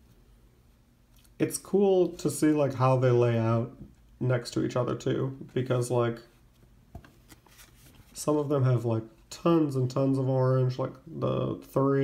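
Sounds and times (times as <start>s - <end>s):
person speaking: 1.2s - 6.5s, 7.5s - 12.0s.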